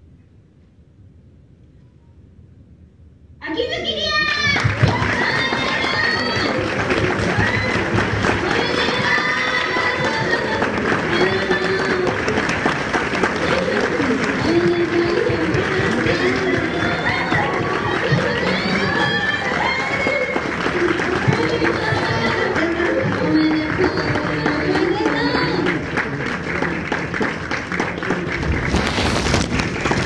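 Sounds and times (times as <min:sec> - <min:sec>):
crowd cheering and shrieking: 0:04.5 - 0:25.8.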